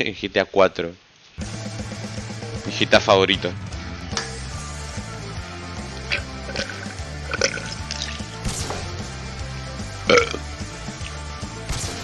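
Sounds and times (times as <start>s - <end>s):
background music with bass line: 1.4s - 12.0s
man burping: 6.0s - 7.9s, 10.0s - 10.5s
man drinking from a bottle: 6.0s - 8.2s, 10.1s - 10.4s.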